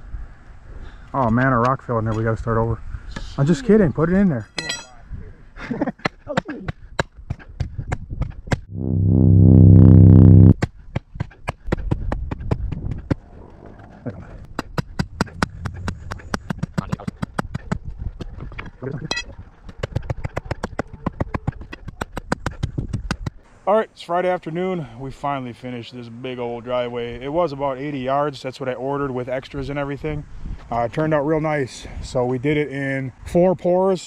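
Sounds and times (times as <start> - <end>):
low steady buzzing tone: 8.7 - 10.6.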